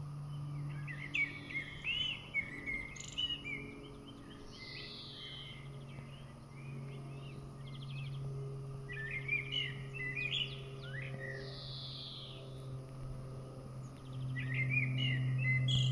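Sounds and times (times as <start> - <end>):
songbirds chirping and warbling: 0.0 - 15.9
steady low hum: 0.0 - 15.9.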